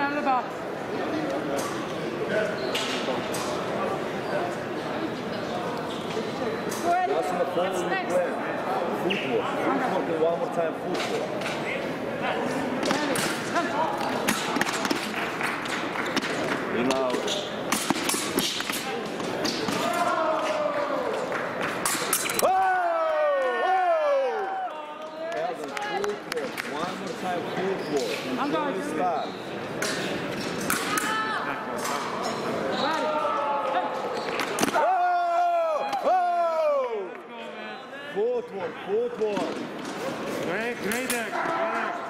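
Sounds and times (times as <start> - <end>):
chatter in large hall: 0.0 - 42.0.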